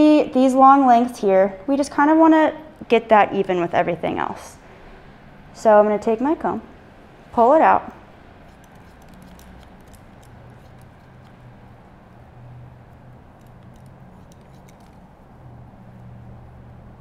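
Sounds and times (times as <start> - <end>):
shears snipping hair: 8.4 - 11.8, 12.8 - 15.2.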